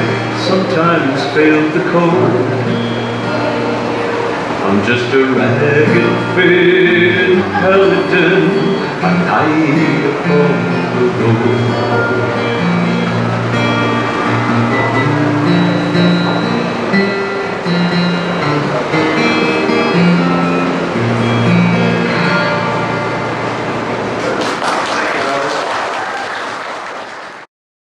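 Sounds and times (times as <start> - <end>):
acoustic guitar picking and strumming: 0.0 - 24.6
audience applause: 24.1 - 27.5.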